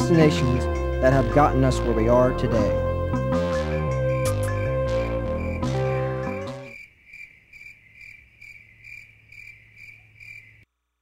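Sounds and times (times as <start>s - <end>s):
cricket chirping: 3.6s - 10.7s.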